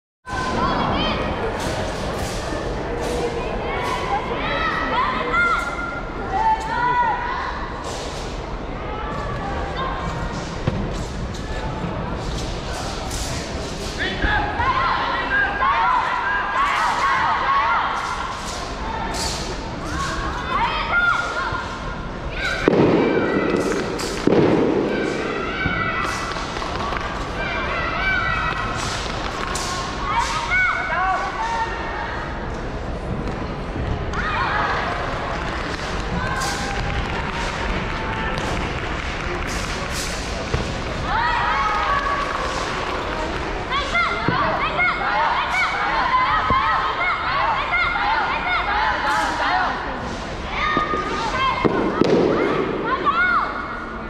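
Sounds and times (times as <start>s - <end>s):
people chattering: 0.3s - 54.0s.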